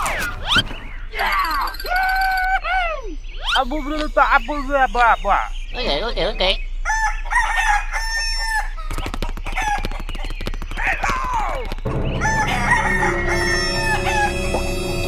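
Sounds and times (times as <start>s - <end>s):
chickens clucking: 5.7s - 15.0s
rooster crowing: 6.8s - 8.8s, 11.9s - 15.0s
music with low tones: 11.8s - 15.0s.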